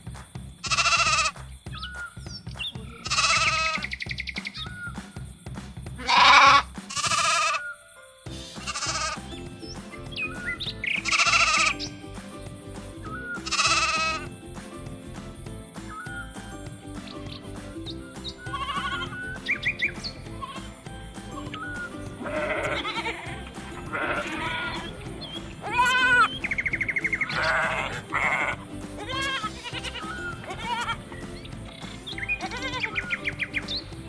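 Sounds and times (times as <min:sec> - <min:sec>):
sheep bleating: 0:00.6 - 0:01.4, 0:02.9 - 0:03.9, 0:06.0 - 0:07.6, 0:08.6 - 0:09.2, 0:11.0 - 0:11.8, 0:13.4 - 0:14.3, 0:18.4 - 0:19.2, 0:20.3 - 0:20.7, 0:22.2 - 0:24.9, 0:25.6 - 0:26.3, 0:27.2 - 0:31.0, 0:32.3 - 0:33.2.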